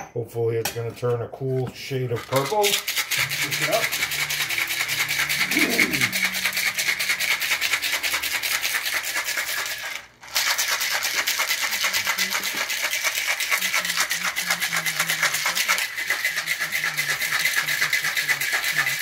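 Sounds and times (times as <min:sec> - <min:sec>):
cocktail shaker rattling: 0:02.1 - 0:19.0.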